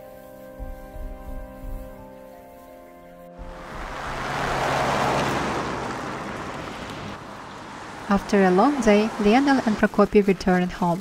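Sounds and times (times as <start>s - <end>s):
music: 0.0s - 4.1s.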